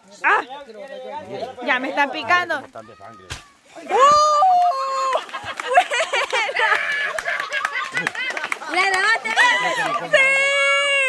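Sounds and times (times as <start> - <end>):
people yelling and shrieking: 2.7 - 5.8, 6.4 - 8.3, 9.0 - 11.0
people laughing: 4.0 - 11.0.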